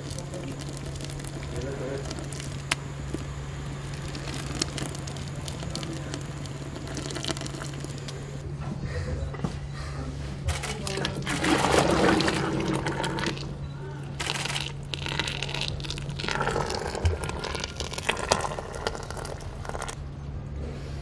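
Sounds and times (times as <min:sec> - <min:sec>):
thick drink pouring into urn: 0:00.0 - 0:08.4, 0:10.6 - 0:20.0.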